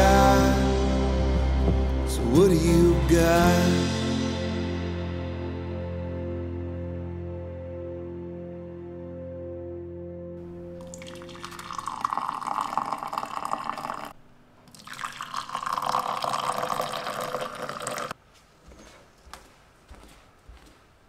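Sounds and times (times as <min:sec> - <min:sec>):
milk pouring into mugs: 0:10.8 - 0:14.1, 0:14.7 - 0:18.2.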